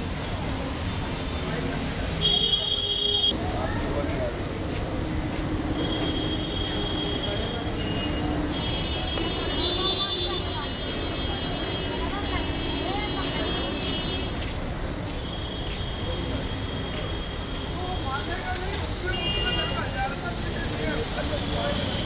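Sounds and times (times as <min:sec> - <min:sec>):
faint voices talking: 0:00.0 - 0:22.0
road traffic rumble: 0:00.0 - 0:22.0.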